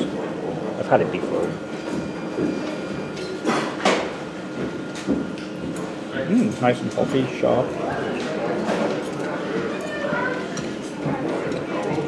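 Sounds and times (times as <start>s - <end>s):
pub background noise: 0.0s - 12.0s.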